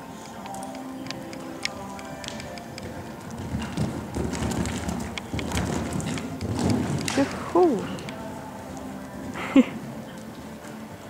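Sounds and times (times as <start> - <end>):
faint background music: 0.0 - 11.0
horse hoofbeats on sand: 0.0 - 11.0.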